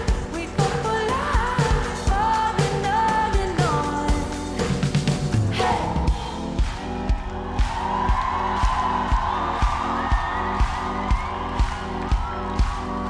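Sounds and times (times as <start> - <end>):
live pop music over pa: 0.0 - 13.0
kick drum beat: 6.6 - 13.0.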